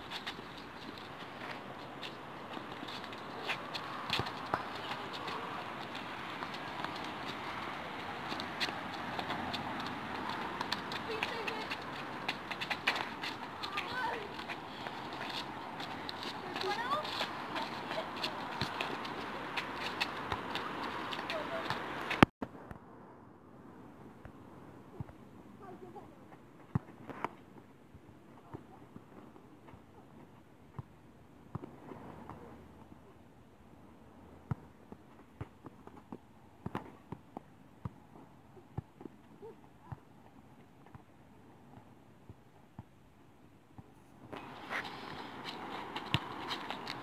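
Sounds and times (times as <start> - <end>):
running footsteps: 0.0 - 22.3, 44.4 - 47.0.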